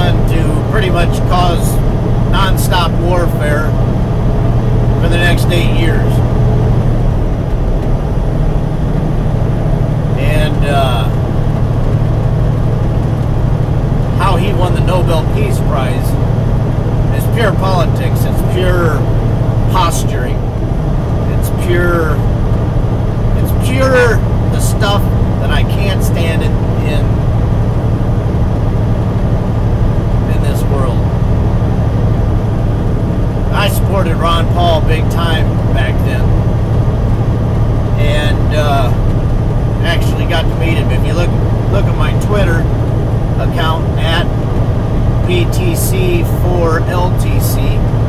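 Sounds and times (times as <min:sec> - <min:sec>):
man talking: 0:00.0 - 0:03.8, 0:05.0 - 0:06.3, 0:10.2 - 0:11.2, 0:14.0 - 0:16.2, 0:17.1 - 0:19.1, 0:19.7 - 0:20.5, 0:21.3 - 0:22.2, 0:23.4 - 0:27.2, 0:30.2 - 0:31.1, 0:33.5 - 0:36.4, 0:38.0 - 0:39.1, 0:39.8 - 0:42.7, 0:43.4 - 0:44.4, 0:45.2 - 0:47.9
truck engine drone from cab: 0:00.0 - 0:48.0.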